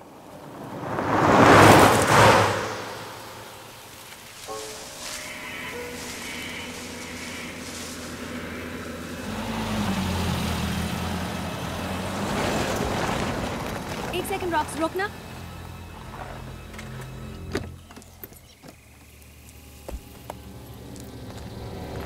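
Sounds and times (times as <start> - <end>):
car driving by: 0.0 - 18.0
low vehicle rumble: 0.0 - 22.0
held music tones: 2.6 - 10.1.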